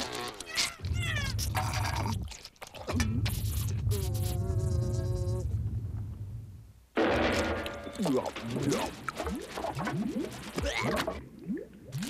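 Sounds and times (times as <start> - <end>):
low rumble: 3.0 - 7.0.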